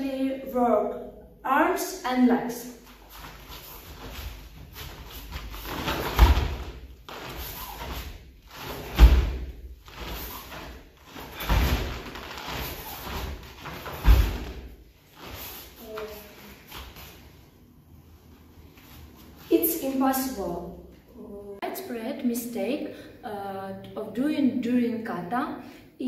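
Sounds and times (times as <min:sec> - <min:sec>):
cloth swishing: 0:02.8 - 0:17.4
bare feet thumping on foam mats: 0:03.2 - 0:14.8.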